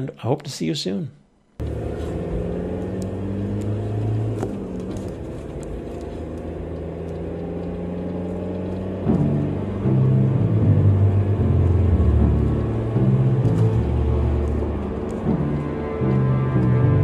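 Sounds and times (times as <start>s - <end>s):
car engine rumble from inside: 1.6s - 17.0s.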